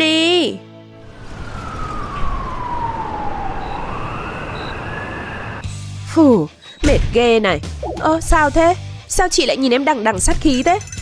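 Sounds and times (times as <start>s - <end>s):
siren wailing: 1.0s - 5.7s.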